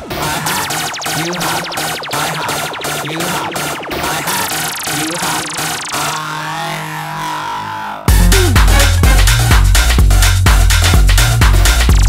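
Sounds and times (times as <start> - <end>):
sustained synth drone: 8.1 - 9.7
slow synth sweep: 8.1 - 9.8.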